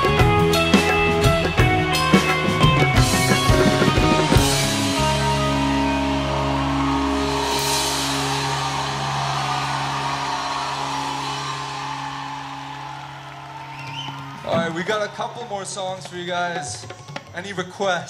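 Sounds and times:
rock band holding final chord: 2.8 - 13.6.

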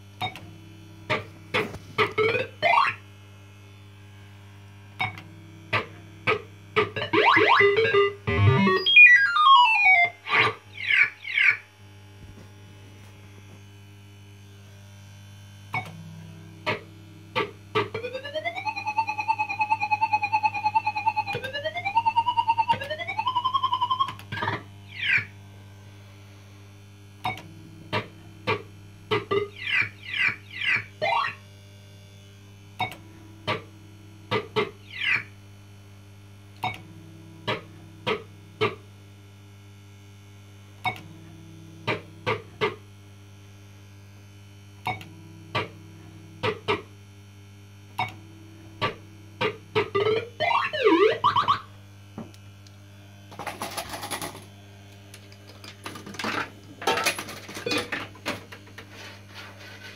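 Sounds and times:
low mains hum: 0.0 - 59.9.

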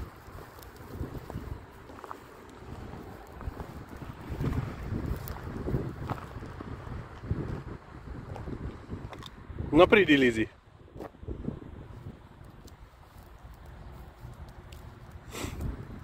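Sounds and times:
faint clicks and rustles: 0.0 - 7.3, 12.0 - 15.8
wind buffeting microphone: 0.0 - 16.0.

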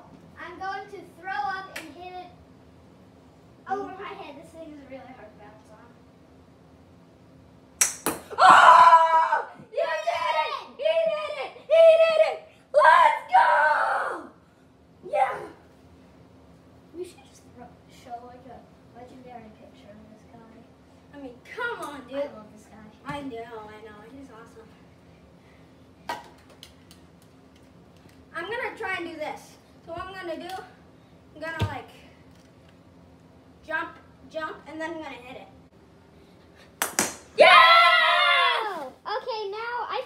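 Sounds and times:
sharp click of hard object: 7.8 - 8.3
child yelling: 8.4 - 14.4, 15.0 - 15.6, 37.4 - 40.0.

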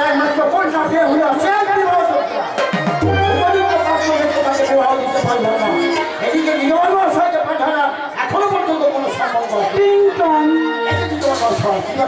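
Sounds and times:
person speaking loudly: 0.0 - 12.0.

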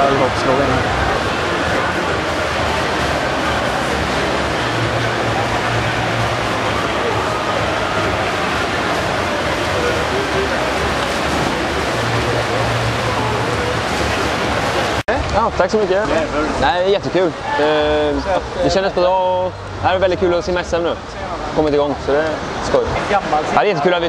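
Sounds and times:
swimmers splashing: 0.0 - 16.7
indistinct chatter: 0.0 - 24.0.

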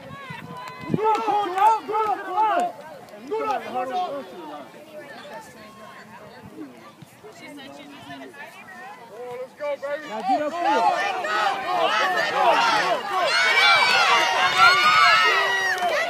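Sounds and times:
voices shouting: 0.0 - 6.3, 7.5 - 16.0
distant people talking and calling: 0.0 - 16.0.

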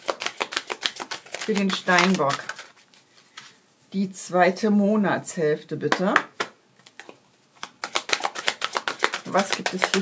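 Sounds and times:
cards being shuffled: 0.0 - 3.6, 6.4 - 10.0.

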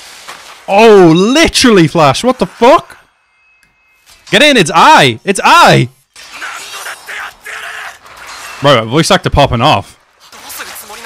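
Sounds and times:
character shouting: 6.2 - 8.1
crashing shattering sound effect: 6.2 - 9.0.

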